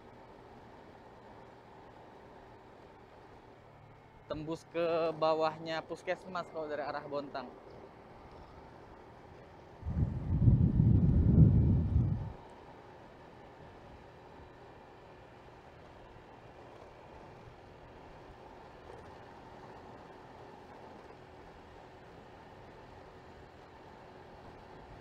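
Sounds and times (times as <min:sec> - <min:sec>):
scooter engine running: 0:07.4 - 0:25.0
wind buffeting microphone: 0:09.8 - 0:12.4.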